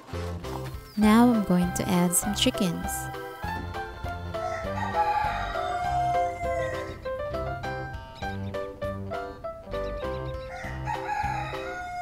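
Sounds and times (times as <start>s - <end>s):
background music with bass: 0.0s - 11.6s
rooster crowing: 3.2s - 7.1s, 10.4s - 12.0s.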